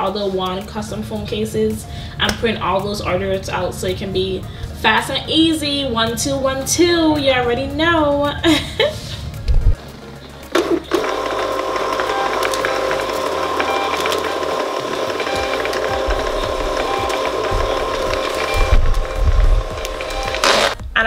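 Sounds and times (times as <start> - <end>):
label printer motor whirring: 10.5 - 20.8.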